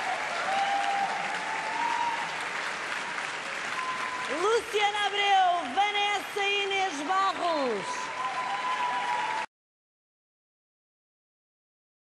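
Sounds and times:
large audience applauding: 0.0 - 9.5.

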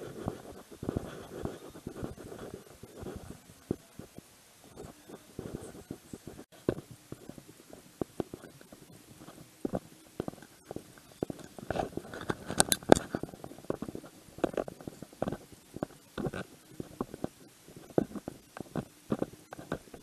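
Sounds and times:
camera casing rubbing on clothing: 0.0 - 20.0.

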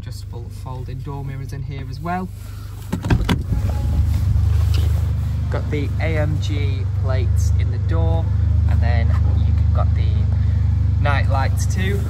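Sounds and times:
low rumble: 3.1 - 12.0.

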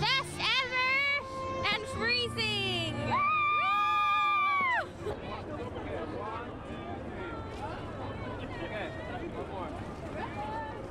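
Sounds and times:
crowd noise: 0.0 - 10.9.

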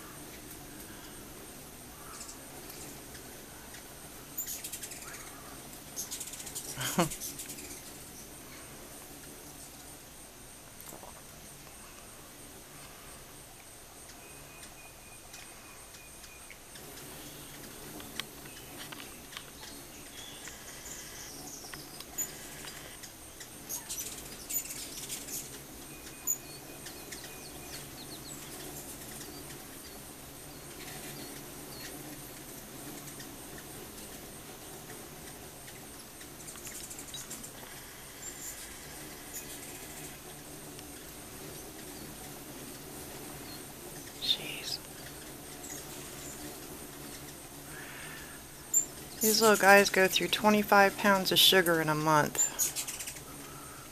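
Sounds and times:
whirr of wings: 0.0 - 10.4, 11.2 - 49.9, 52.4 - 53.9
hummingbirds chipping and chattering: 0.0 - 53.9.

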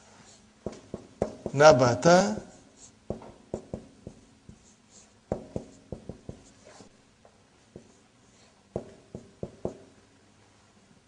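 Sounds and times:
marker writing on a whiteboard: 0.2 - 7.0, 7.7 - 9.9.

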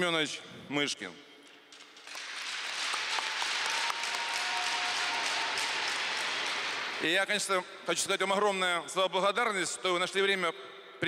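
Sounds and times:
crowd applauding: 2.0 - 7.0.

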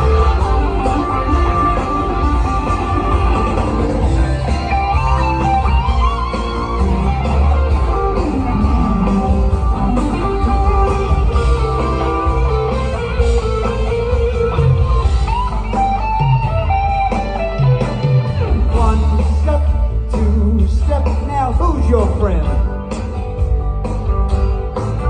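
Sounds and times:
electric guitar lead lines: 0.0 - 20.9
live rock band playing: 0.0 - 25.0.

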